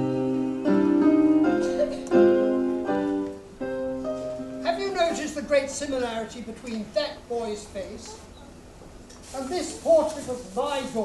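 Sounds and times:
keyboard playing sustained chords: 0.0 - 5.6.

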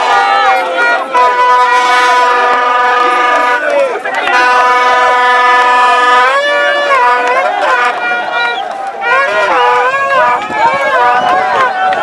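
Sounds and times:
faint crowd voices: 0.0 - 12.0
horns blasting together: 0.0 - 12.0.

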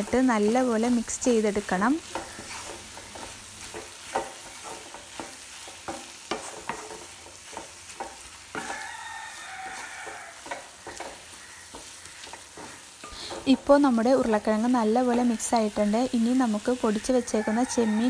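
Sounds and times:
low sizzle of frying oil: 0.0 - 18.0
wooden spatula scraping pan: 0.0 - 18.0.

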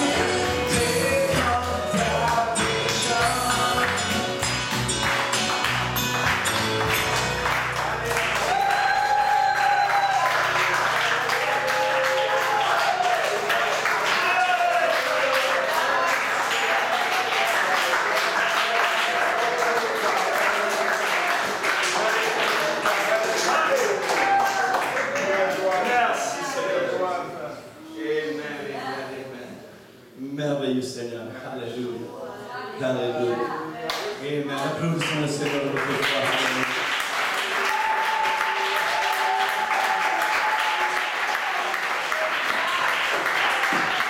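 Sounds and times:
live worship band playing: 0.0 - 12.2
congregation clapping: 0.0 - 26.2, 33.9 - 44.0.

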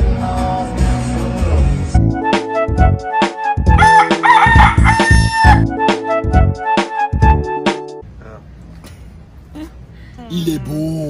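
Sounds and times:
music with a steady beat: 0.0 - 8.0
rooster crowing: 3.8 - 5.7.

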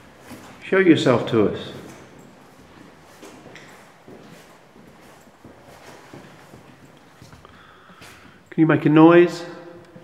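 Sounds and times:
footsteps on hard floor: 1.8 - 8.5.

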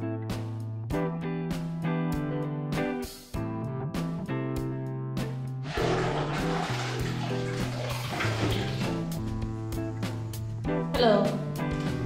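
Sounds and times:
guitar music: 0.0 - 12.0
water sloshing in a bucket: 5.6 - 9.3.

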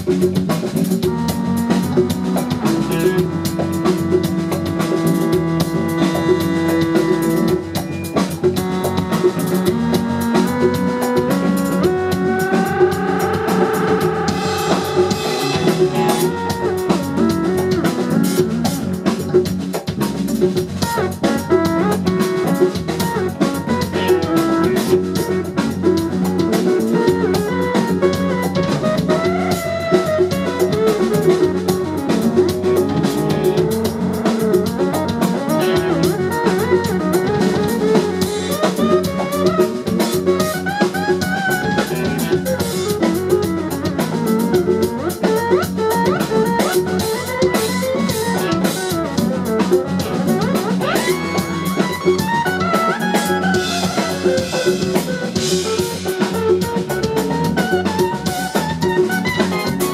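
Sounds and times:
electric guitar lead lines: 0.0 - 59.9
funk band playing live: 0.0 - 59.9.

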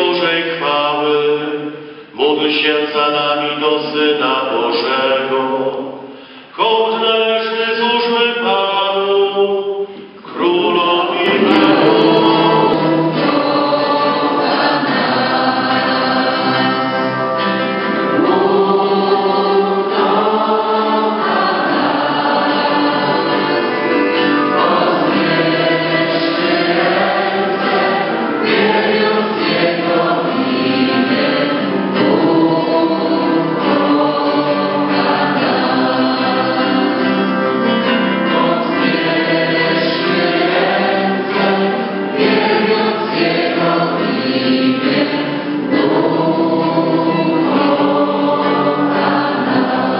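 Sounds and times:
congregation singing: 0.0 - 49.9.

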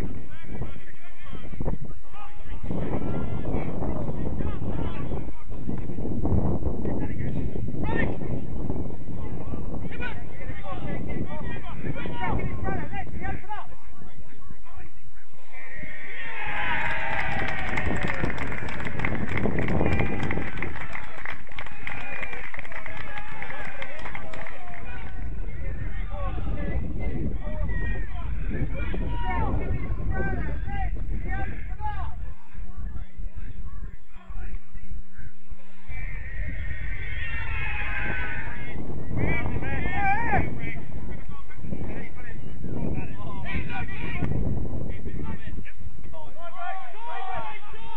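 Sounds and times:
wind rumble on microphone: 0.0 - 14.8, 15.7 - 47.9
people shouting and cheering: 15.4 - 32.8, 35.6 - 47.9
people shouting: 15.5 - 18.2, 35.9 - 38.7, 46.5 - 47.9.

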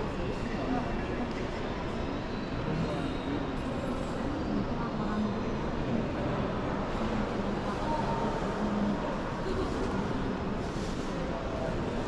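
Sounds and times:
faint indistinct voices: 0.0 - 12.0
steady background noise: 0.0 - 12.0.

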